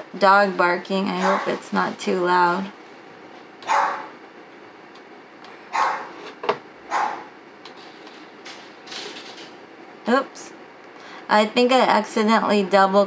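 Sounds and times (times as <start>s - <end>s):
dog barking: 1.2s - 1.6s, 3.6s - 4.1s, 5.7s - 6.2s, 6.9s - 7.3s.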